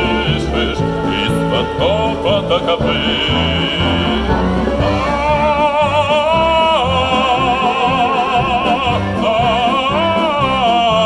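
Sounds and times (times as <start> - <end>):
walking bass line: 0.0 - 11.0
wind band playing: 0.0 - 11.0.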